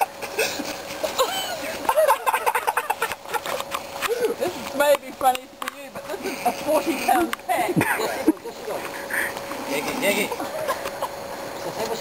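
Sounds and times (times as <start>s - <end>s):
people laughing: 0.0s - 4.5s, 6.0s - 9.4s, 10.1s - 11.4s.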